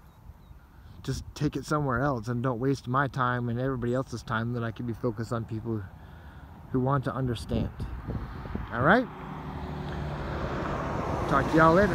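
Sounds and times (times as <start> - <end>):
road vehicle rushing with hum: 5.8 - 11.9.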